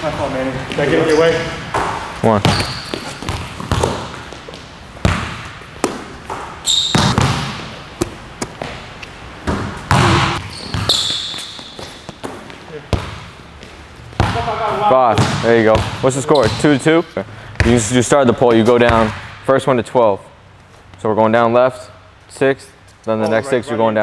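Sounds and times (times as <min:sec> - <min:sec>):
sneakers squeaking: 0:00.0 - 0:16.9
basketball bouncing on wooden floor: 0:01.7 - 0:08.8, 0:09.4 - 0:16.6.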